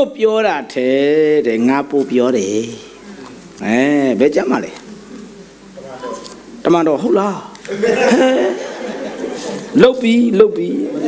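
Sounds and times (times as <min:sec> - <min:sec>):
man speaking in a hall: 0:00.0 - 0:04.9, 0:05.8 - 0:11.0.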